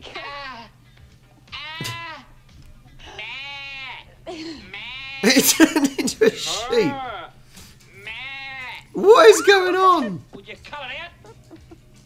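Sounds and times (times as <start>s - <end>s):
man imitating sheep bleats: 1.5s - 2.2s, 3.2s - 7.2s, 8.0s - 10.3s
man laughing: 5.2s - 7.0s, 9.0s - 10.5s, 11.1s - 12.0s.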